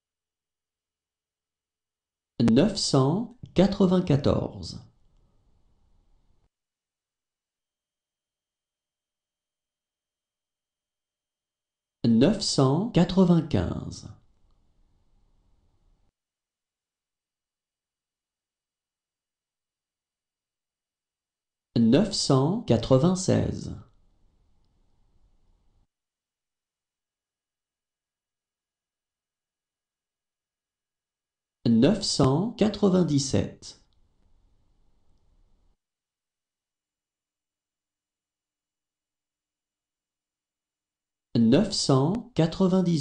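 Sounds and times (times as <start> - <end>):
person reading a number aloud: 2.4 - 4.9, 12.0 - 14.2, 21.8 - 23.8, 31.7 - 33.8, 41.4 - 43.0
person speaking: 2.4 - 5.0, 12.0 - 14.2, 21.8 - 23.9, 31.7 - 33.9, 41.4 - 43.0.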